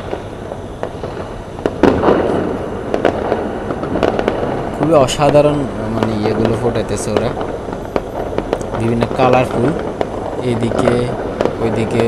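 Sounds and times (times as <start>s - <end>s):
distant fireworks crackling: 0.0s - 12.0s
fireworks bang: 0.0s - 12.0s.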